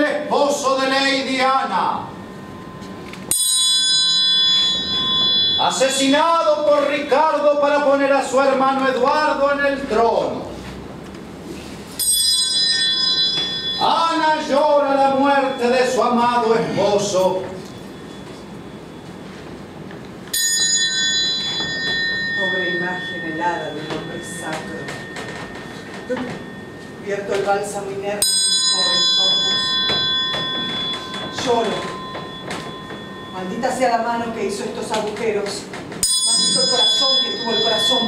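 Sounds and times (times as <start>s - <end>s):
metal triangle ringing: 0.0s - 9.6s, 12.0s - 38.0s.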